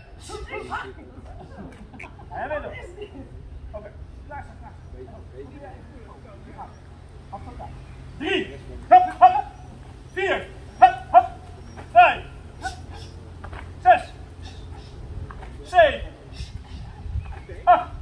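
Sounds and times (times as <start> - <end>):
loud vocal calls: 0.0 - 3.0, 4.5 - 18.0.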